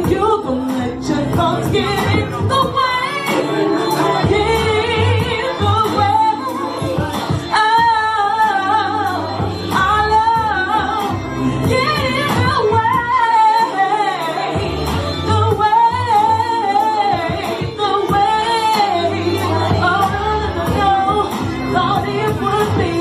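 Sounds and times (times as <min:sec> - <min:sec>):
backing music with bass line: 0:00.0 - 0:23.0
woman singing into microphone: 0:00.0 - 0:23.0.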